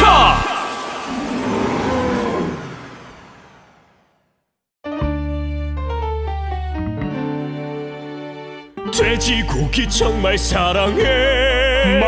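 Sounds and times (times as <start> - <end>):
cartoon dinosaur roar: 0.0 - 3.1.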